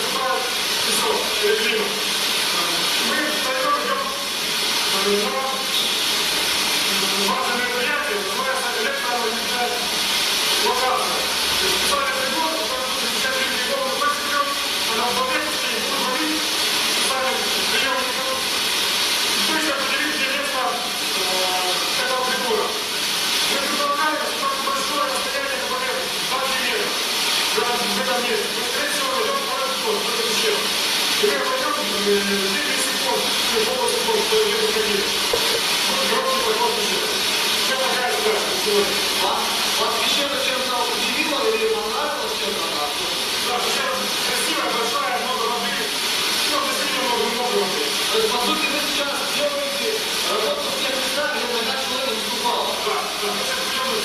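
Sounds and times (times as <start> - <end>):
loud steady hiss: 0.0 - 54.0.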